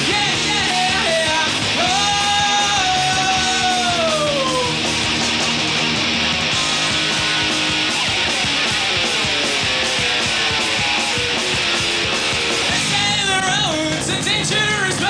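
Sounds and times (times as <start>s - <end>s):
punk rock band playing: 0.0s - 15.0s.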